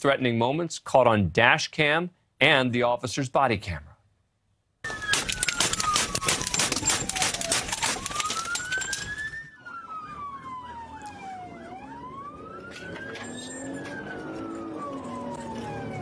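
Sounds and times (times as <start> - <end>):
police siren wailing: 4.8 - 16.0
dense crackle of clicks: 4.9 - 9.5.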